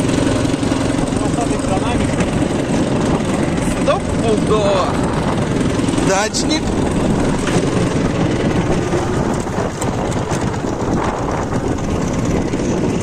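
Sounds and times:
motorcycle engine running: 0.0 - 13.0
wind noise on microphone: 0.0 - 13.0.

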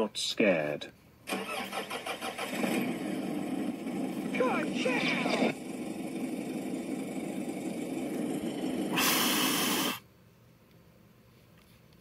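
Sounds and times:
cartoon car engine effect: 1.3 - 10.0.

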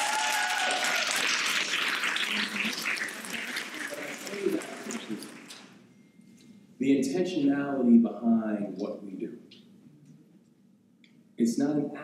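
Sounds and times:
audience applauding: 0.0 - 5.8.

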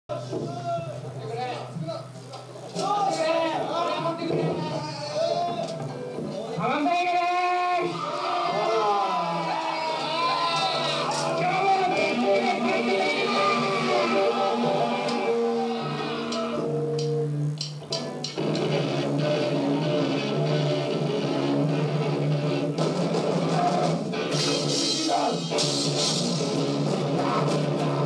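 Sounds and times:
rock band music: 2.8 - 28.0.

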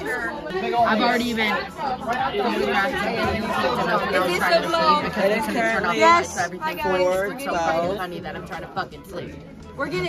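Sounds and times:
voices talking over one another: 0.0 - 10.0.

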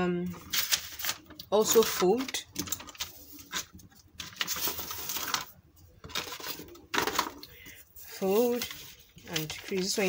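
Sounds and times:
plastic sheet and paper rustling: 0.3 - 10.0.

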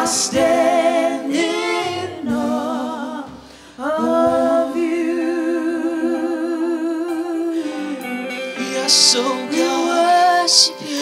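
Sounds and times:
keyboard accompaniment: 0.0 - 11.0.

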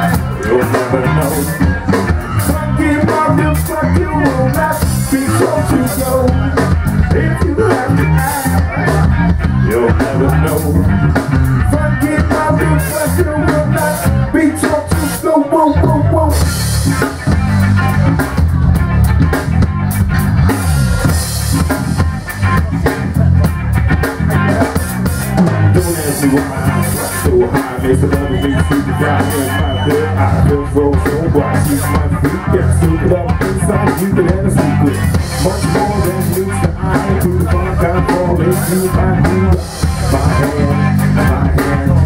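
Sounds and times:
busy bass line: 0.0 - 42.0
live rock band playing: 0.0 - 42.0.

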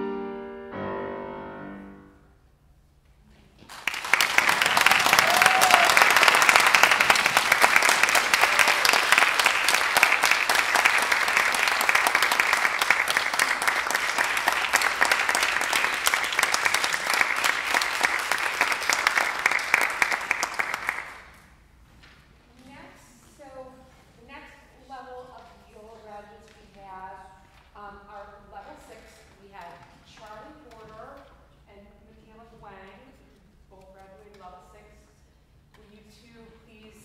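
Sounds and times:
audience applauding: 3.7 - 21.4.

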